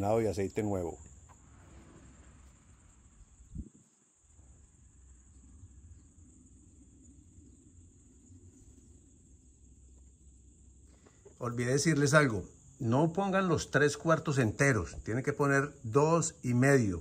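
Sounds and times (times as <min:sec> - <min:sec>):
faint high-pitched whine: 0:00.0 - 0:17.0.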